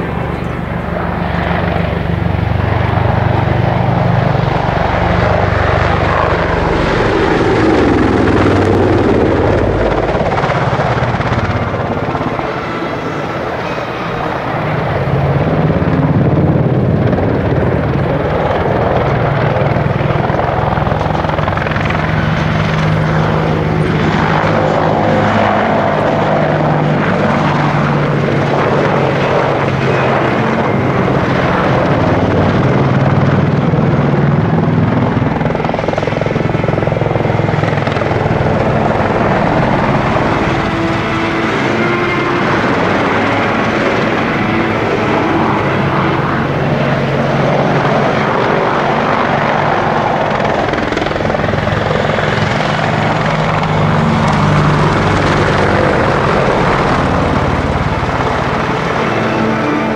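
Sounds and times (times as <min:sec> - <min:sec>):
helicopter flying low: 0:00.0 - 0:59.9.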